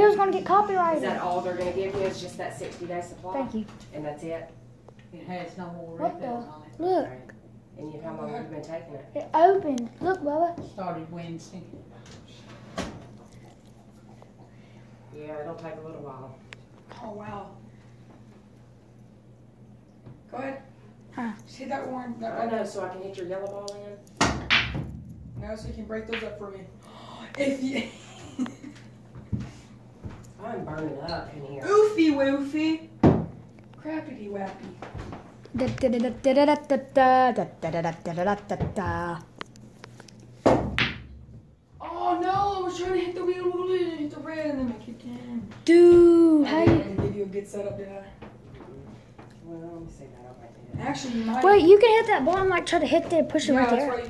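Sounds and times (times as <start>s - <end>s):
faint low hum: 0.0s - 54.0s
pool ball dull thump: 24.2s - 26.4s, 40.4s - 41.5s.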